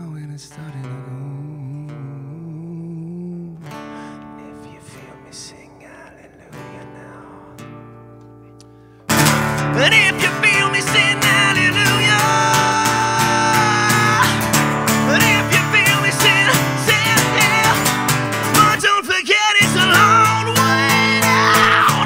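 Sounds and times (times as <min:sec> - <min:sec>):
man singing rock song: 0:00.0 - 0:07.9, 0:09.4 - 0:22.0
strummed acoustic guitar: 0:00.0 - 0:22.0.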